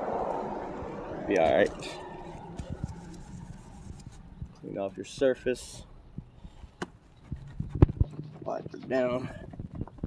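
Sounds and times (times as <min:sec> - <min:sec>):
sharp clicks and knocks: 0:06.8 - 0:10.0.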